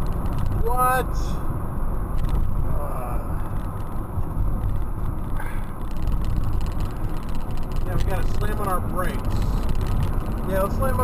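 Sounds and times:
road and engine rumble in car: 0.0s - 11.0s.

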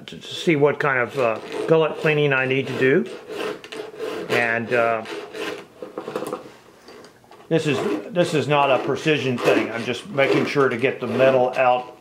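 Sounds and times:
file rasping on chainsaw chain: 0.8s - 6.0s, 7.5s - 12.0s.

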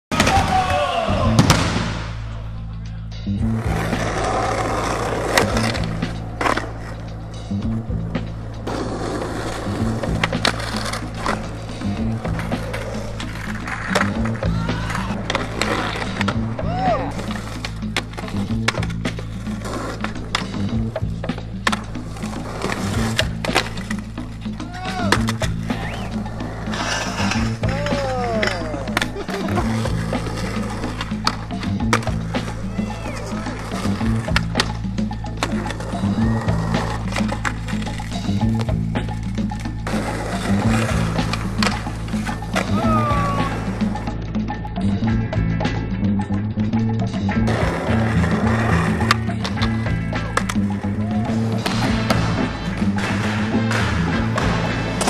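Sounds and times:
music with bass line: 0.1s - 55.0s
skateboard rolling on concrete: 3.3s - 55.0s
skateboard clack: 3.5s - 44.2s, 47.4s - 55.0s.

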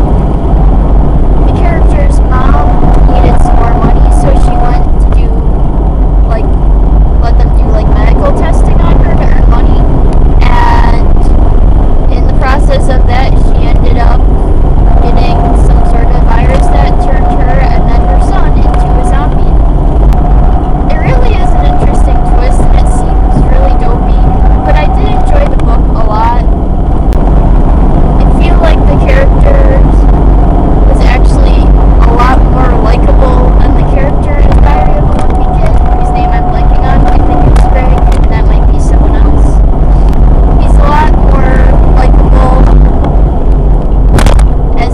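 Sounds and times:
engine and road rumble: 0.0s - 44.9s
thin steady whine: 0.0s - 44.9s
person talking: 1.5s - 5.4s, 7.2s - 11.3s, 12.1s - 14.3s, 15.0s - 19.6s, 20.9s - 26.5s, 28.2s - 30.0s, 30.9s - 39.6s, 40.6s - 42.7s.

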